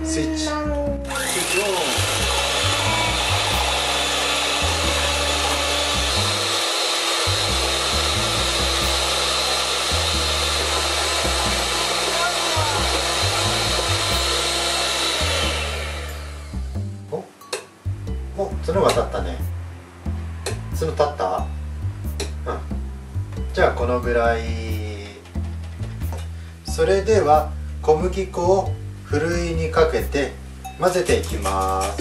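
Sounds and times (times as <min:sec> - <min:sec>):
electric hand mixer whipping: 0:01.0 - 0:16.8.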